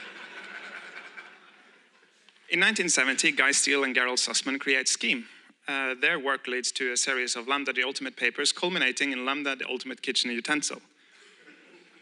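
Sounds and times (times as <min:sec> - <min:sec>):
audience laughing quietly: 0:00.0 - 0:02.1.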